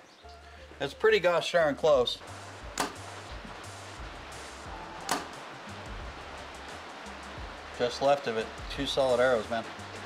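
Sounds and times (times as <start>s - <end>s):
rain hiss: 0.7s - 10.0s
bow string snap: 2.8s - 3.1s, 5.0s - 5.4s.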